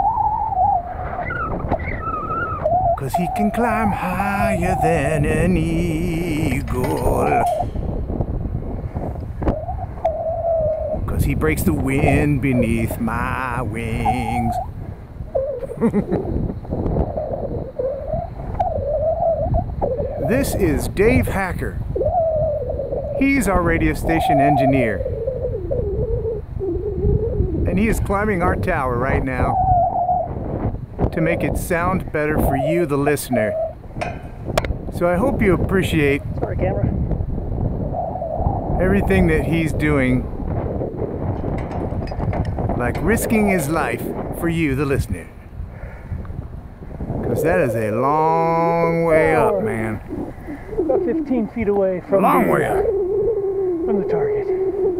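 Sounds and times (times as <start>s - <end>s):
wavering whistle-like tone: 0.0s - 7.8s, 9.5s - 14.7s, 17.1s - 27.6s, 32.4s - 34.2s, 52.1s - 54.9s
wind rumble on microphone: 0.0s - 54.9s
short laugh: 15.7s - 16.3s.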